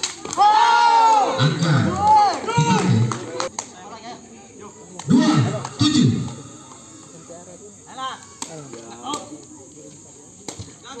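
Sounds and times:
people shouting: 0.2 - 3.4, 5.0 - 7.2.

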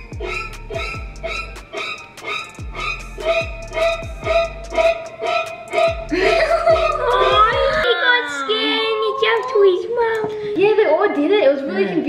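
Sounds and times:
child talking: 6.7 - 12.0.

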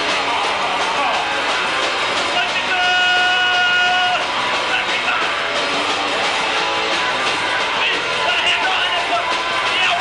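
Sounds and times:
club crowd noise: 0.0 - 10.0.

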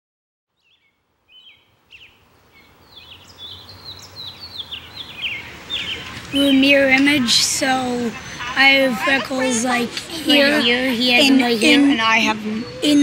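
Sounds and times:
birds chirping: 0.6 - 13.0
low outdoor hum: 1.0 - 13.0.

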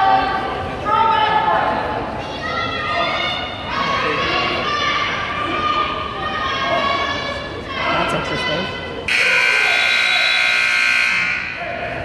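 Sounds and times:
crowd voices: 0.0 - 12.0
scoreboard buzzer blast: 9.1 - 11.6.

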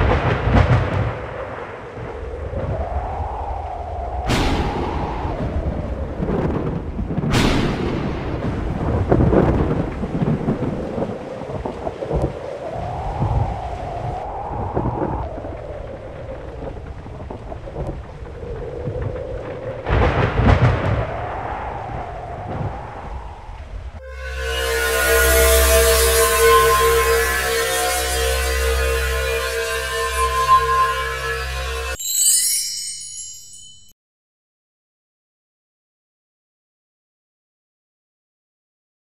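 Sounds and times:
thunder cracks: 0.0 - 3.0, 3.6 - 27.1
thunder rumbling: 0.0 - 32.0
wavering tone: 24.0 - 33.9.

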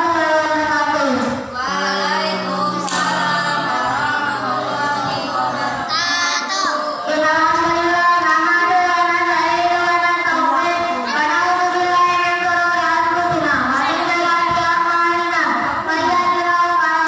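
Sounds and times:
boy singing into microphone: 0.0 - 17.0.

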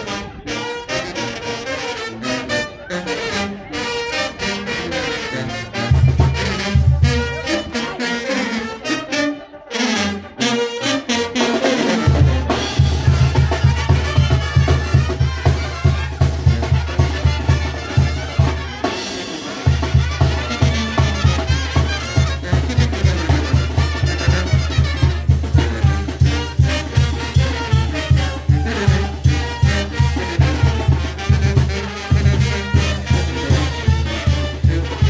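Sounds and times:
brass band playing dance tune: 0.0 - 35.0
trumpets and trombones: 0.0 - 35.0.

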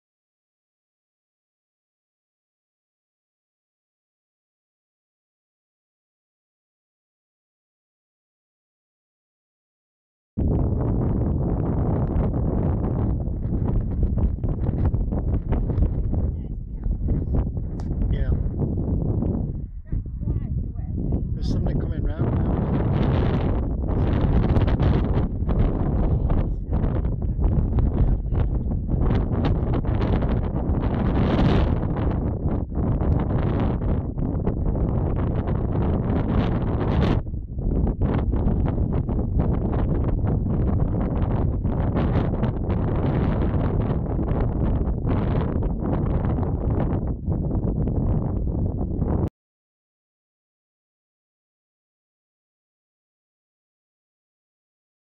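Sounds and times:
strong wind on microphone: 10.4 - 49.3.

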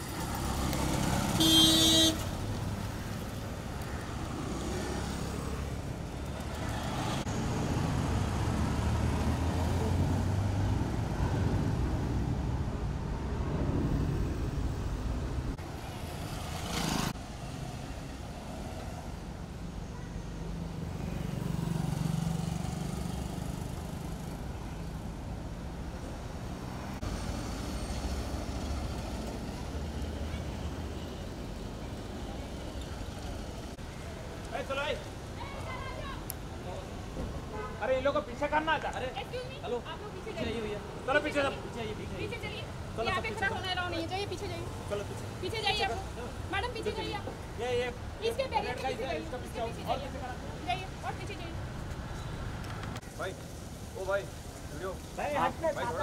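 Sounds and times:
road traffic passing: 0.0 - 56.0
car horn honk: 1.4 - 2.3.

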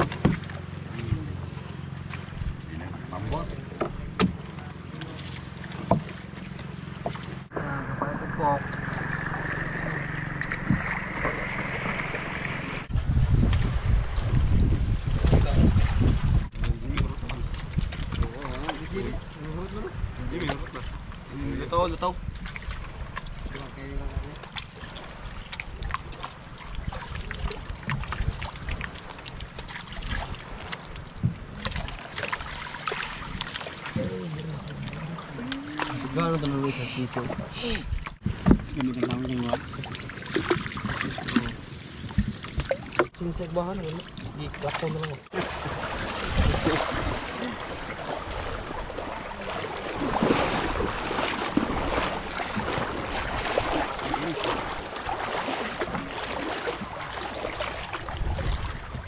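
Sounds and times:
water splashing and sloshing: 0.0 - 59.0
low rumble: 7.5 - 21.4.

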